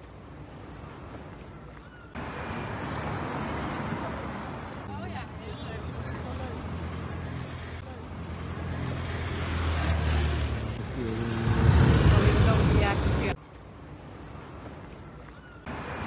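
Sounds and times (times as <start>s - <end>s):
voices: 1.8s - 13.4s
traffic rumbling past: 2.2s - 13.4s
vehicle engine droning: 5.9s - 13.4s.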